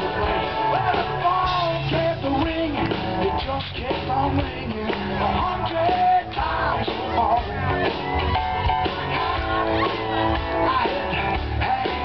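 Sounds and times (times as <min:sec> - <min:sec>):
live rock band playing: 0:00.0 - 0:12.0
man singing lead: 0:00.0 - 0:12.0.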